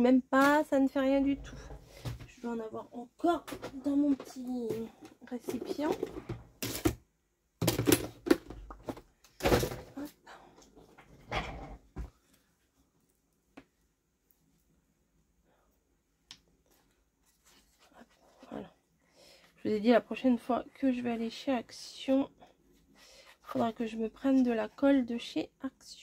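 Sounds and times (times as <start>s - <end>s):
objects being rummaged through: 3.4s - 7.0s, 7.6s - 10.1s.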